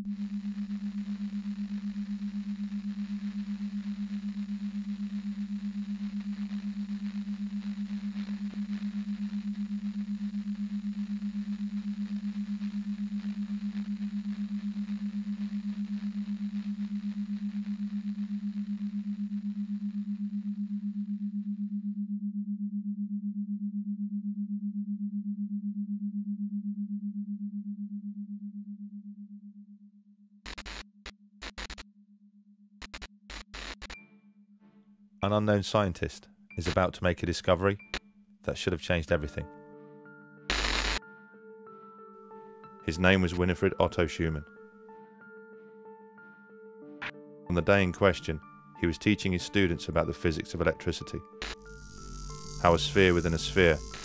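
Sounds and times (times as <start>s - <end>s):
radio static hiss: 0.0s - 20.4s, 30.5s - 31.8s, 32.8s - 34.0s, 35.2s - 38.0s, 40.5s - 41.0s, 51.0s - 54.0s
low synthesized sine tone: 0.0s - 29.9s, 51.4s - 54.0s.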